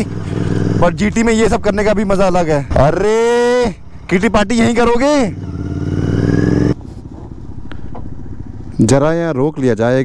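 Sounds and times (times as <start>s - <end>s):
motorcycle engine revving: 0.0s - 2.4s, 3.3s - 9.0s.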